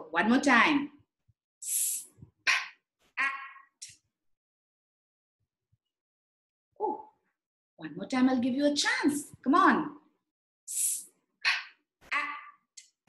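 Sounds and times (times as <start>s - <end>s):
woman sounding out a word: 10.7s - 12.6s.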